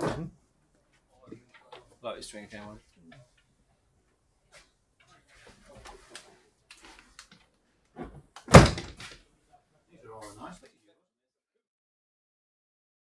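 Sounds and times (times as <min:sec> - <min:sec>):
faint handling noises: 0:00.6 - 0:09.3.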